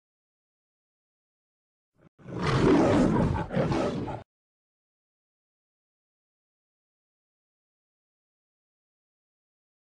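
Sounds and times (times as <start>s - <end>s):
lion roaring: 2.1s - 4.3s.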